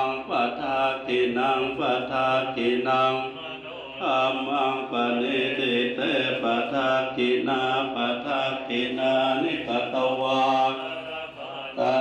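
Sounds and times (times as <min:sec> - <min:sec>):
monks chanting together: 0:00.0 - 0:12.0.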